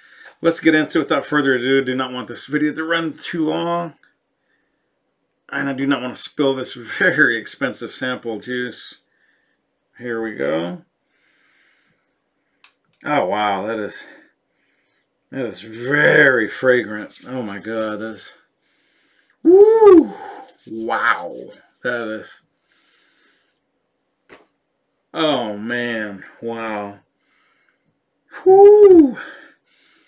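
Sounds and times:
person sniffing: 18.8 - 21.6.

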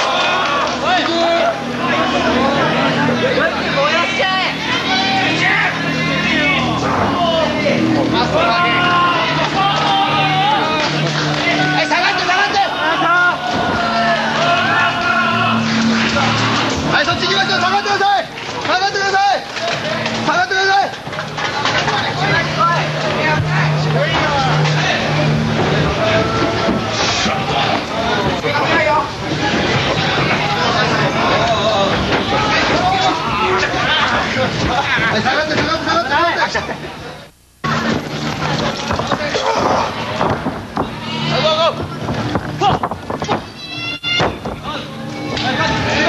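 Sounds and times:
crowd noise in a hall: 0.0 - 46.0
people shouting and talking: 0.0 - 46.0
shrill high cry: 43.5 - 44.4.

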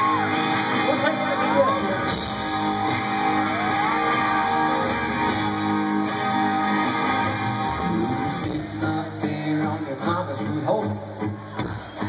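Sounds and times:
live country band playing: 0.0 - 12.0
strummed guitars: 0.0 - 12.0.

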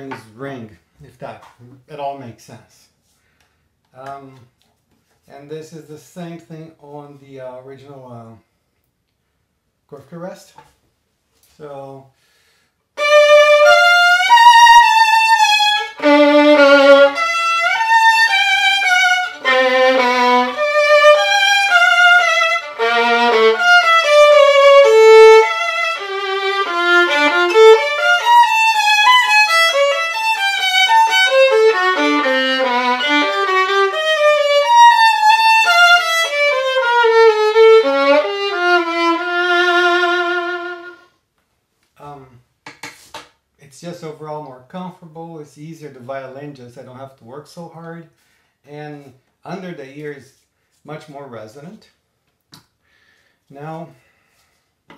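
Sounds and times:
solo violin with vibrato: 13.0 - 41.0.

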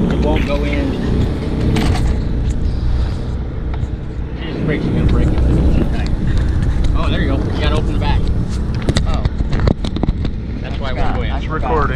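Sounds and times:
wind buffeting microphone: 0.0 - 11.9.

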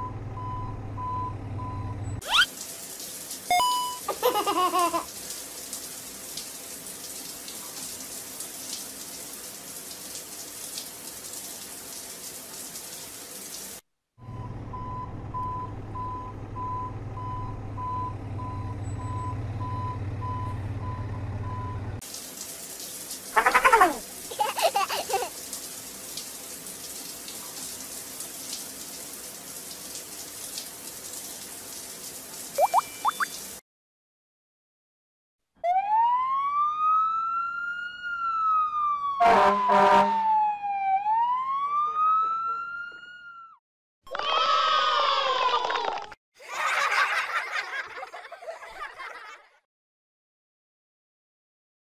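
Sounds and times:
pulsing beep: 32.6 - 33.3.

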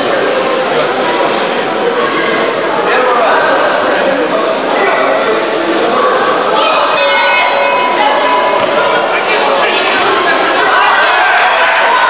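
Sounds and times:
spectators chattering: 0.0 - 12.0
bell ringing: 7.0 - 8.9.

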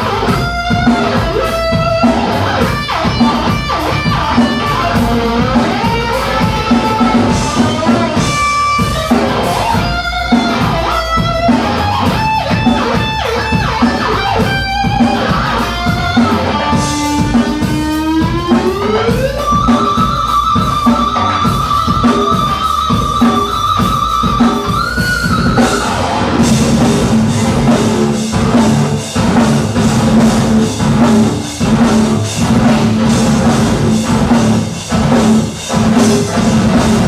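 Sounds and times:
bass and drums: 0.0 - 37.0
distorted electric guitar lead: 0.0 - 37.0.

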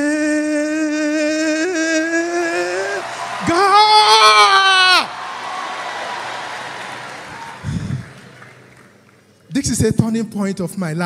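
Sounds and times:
person shouting a long cheer: 1.6 - 8.0.

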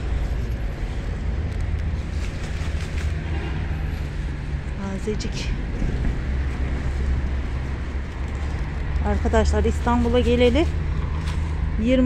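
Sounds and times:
low outdoor rumble: 0.0 - 12.0
lettuce leaves rustling: 6.6 - 12.0.

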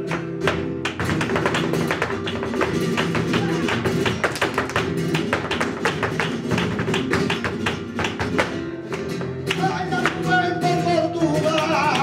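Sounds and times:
flamenco guitar: 0.0 - 12.0.

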